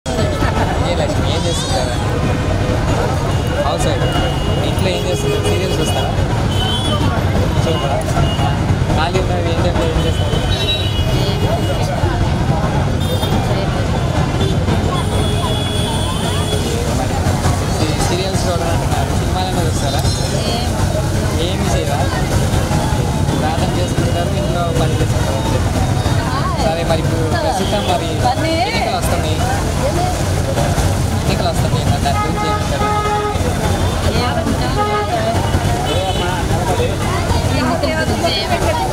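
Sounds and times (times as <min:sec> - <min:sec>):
road traffic rumble: 0:00.0 - 0:38.9
voices: 0:00.0 - 0:38.9
vehicle horn: 0:03.3 - 0:07.1, 0:32.1 - 0:36.4
woman speaking into a microphone: 0:11.1 - 0:11.9, 0:37.4 - 0:38.9.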